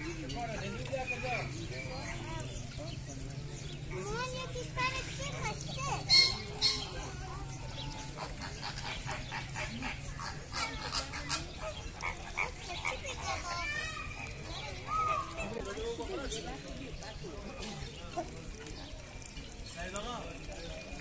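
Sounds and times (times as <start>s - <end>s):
flamingos honking and chattering: 4.9s - 19.8s.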